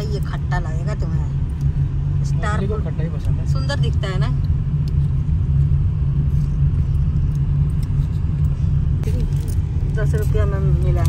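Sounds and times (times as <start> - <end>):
car engine rumble: 0.0 - 11.0
tyres on road: 0.0 - 11.0.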